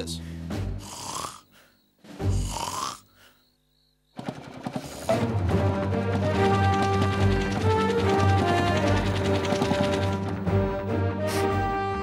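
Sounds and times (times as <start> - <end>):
music: 0.0 - 1.0, 2.0 - 2.7, 4.2 - 12.0
cartoon snoring: 0.7 - 3.2.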